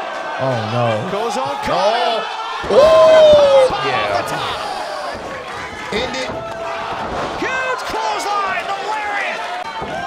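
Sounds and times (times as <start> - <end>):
crowd noise: 0.0 - 10.0
voices shouting: 0.4 - 9.6.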